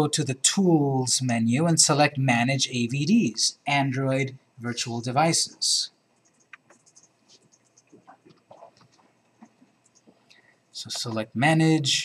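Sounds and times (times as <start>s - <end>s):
faint taps and clicks: 6.2s - 11.2s.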